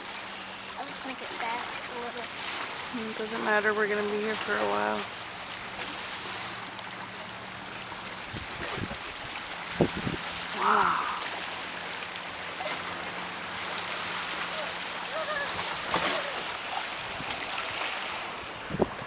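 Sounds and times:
waves lapping on stones: 0.0 - 19.0.

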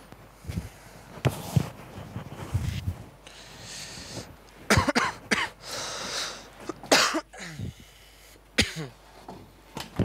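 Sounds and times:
woman sobbing and coughing: 4.7 - 5.6, 6.8 - 7.6, 8.6 - 8.9.

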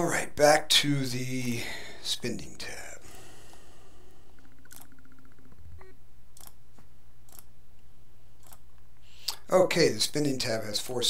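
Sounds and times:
steady low hum: 0.0 - 11.0
computer mouse clicks: 4.4 - 5.6, 6.4 - 6.6.

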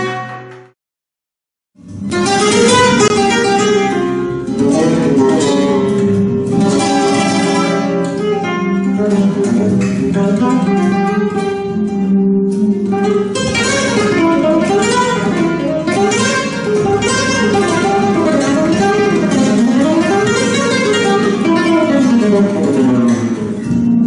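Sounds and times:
solo flamenco guitar: 0.0 - 0.8, 1.8 - 24.0.

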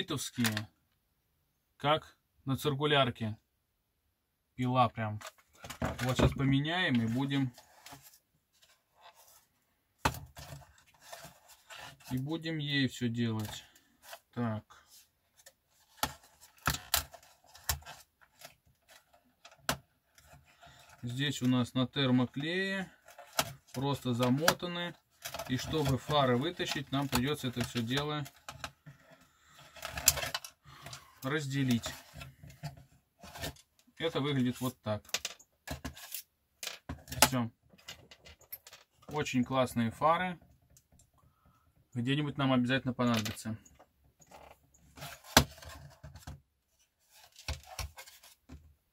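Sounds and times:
plastic scraping and clicking: 15.4 - 21.5, 22.2 - 39.1, 43.0 - 46.4, 47.1 - 48.7.

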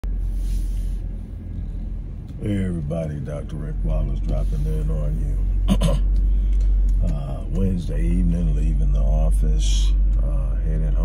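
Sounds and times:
car interior engine and road rumble: 0.0 - 11.0.

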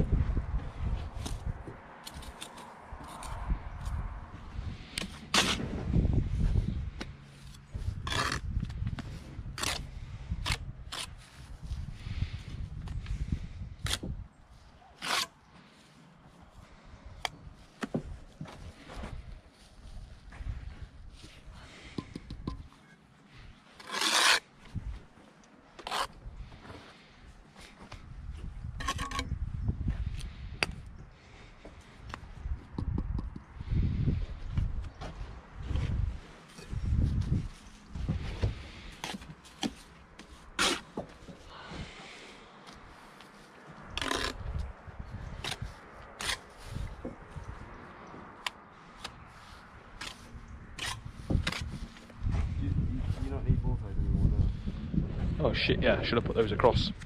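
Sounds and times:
trowel scraping mortar: 2.0 - 3.4, 7.4 - 8.4, 15.0 - 15.4, 23.7 - 24.5, 25.8 - 26.2, 38.8 - 41.0, 44.0 - 44.4, 45.4 - 46.8, 50.0 - 51.9.

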